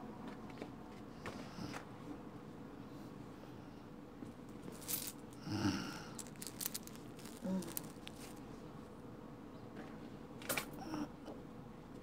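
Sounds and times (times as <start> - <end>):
hands handling objects: 4.6 - 5.4, 6.2 - 8.5
person humming: 7.3 - 7.9.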